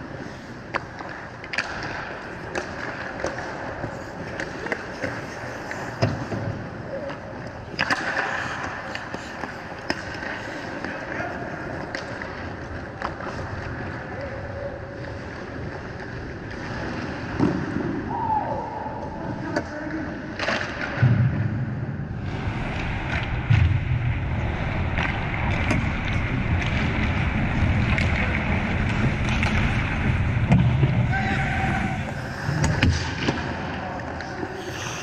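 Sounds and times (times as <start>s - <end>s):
skates scraping ice: 0.0s - 18.0s, 24.4s - 35.0s
hockey sticks and puck clacking: 0.1s - 14.2s, 14.9s - 17.8s, 20.3s - 21.1s, 24.9s - 35.0s.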